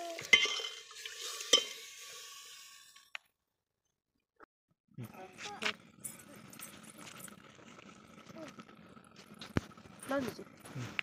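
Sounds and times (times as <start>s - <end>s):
ladle stirring in metal pot: 0.0s - 3.0s
low sizzle of simmering curry: 5.2s - 11.0s.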